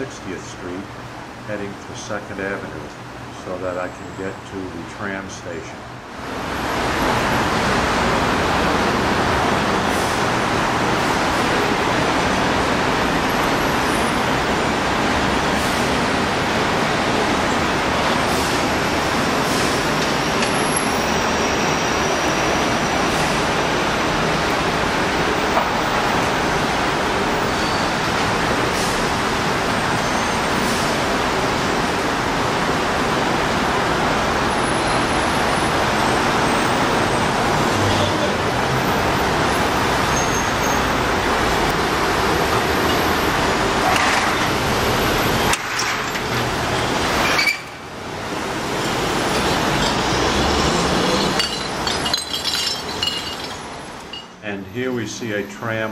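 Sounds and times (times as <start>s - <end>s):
city street traffic: 0.0s - 55.9s.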